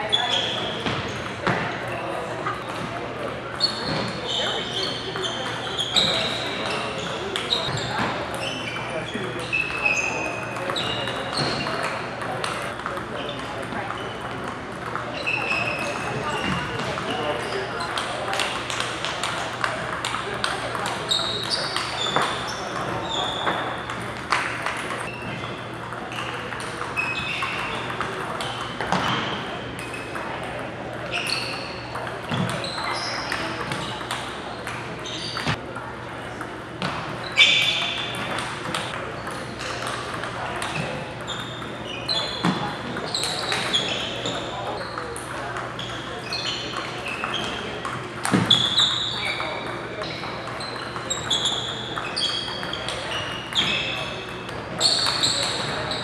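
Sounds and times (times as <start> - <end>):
sneaker squeaks on floor: 0.0 - 35.6, 36.4 - 56.0
murmur of voices: 0.0 - 56.0
table tennis balls clicking: 0.4 - 56.0.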